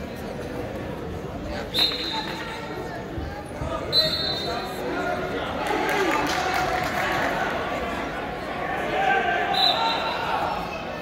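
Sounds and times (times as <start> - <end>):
voices talking in gym: 0.0 - 11.0.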